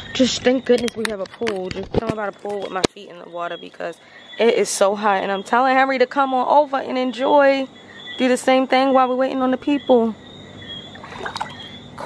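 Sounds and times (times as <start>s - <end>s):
pool water sloshing: 10.9s - 12.0s.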